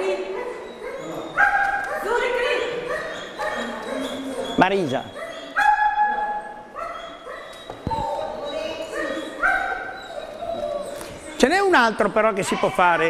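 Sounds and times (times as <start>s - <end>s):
dog yelping: 0.0s - 11.4s.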